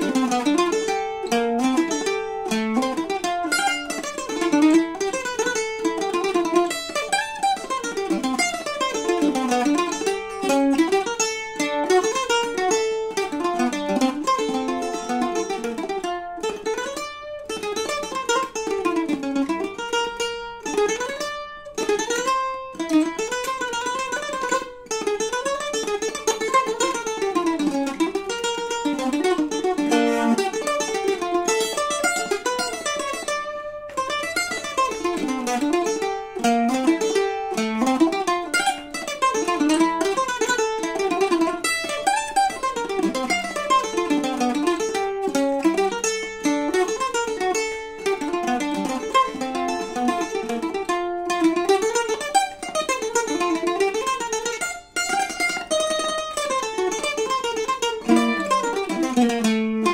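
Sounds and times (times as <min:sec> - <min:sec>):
plucked string melody: 0:00.0 - 0:59.9.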